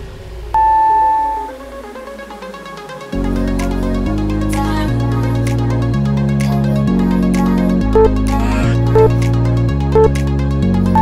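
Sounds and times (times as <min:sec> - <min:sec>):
falling synth sweep: 0:00.1 - 0:04.4
long timer beep: 0:00.6 - 0:01.6, 0:08.0 - 0:08.2, 0:08.9 - 0:09.2
electronic dance music: 0:07.9 - 0:09.4, 0:10.0 - 0:10.2.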